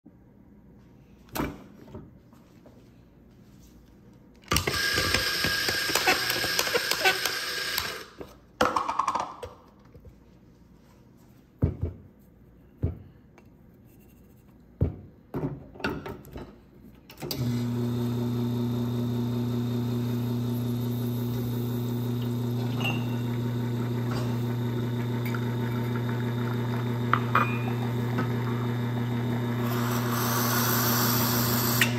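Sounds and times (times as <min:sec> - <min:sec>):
espresso machine pump humming: 0:04.7 - 0:08.0, 0:17.4 - 0:31.9
loud whirring grinder: 0:04.7 - 0:08.0, 0:17.4 - 0:31.9.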